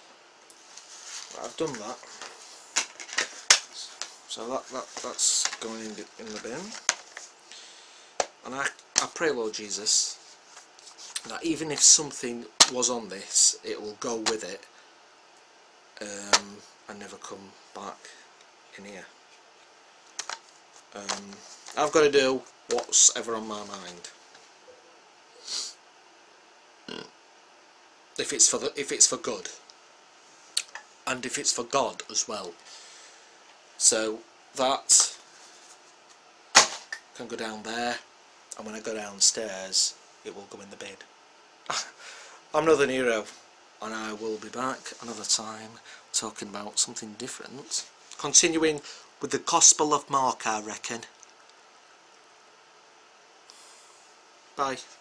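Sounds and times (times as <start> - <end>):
faint room hiss: 0.0 - 55.0.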